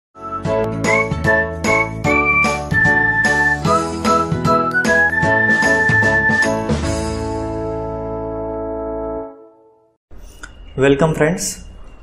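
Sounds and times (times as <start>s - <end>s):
bright jingle music: 0.2s - 9.6s.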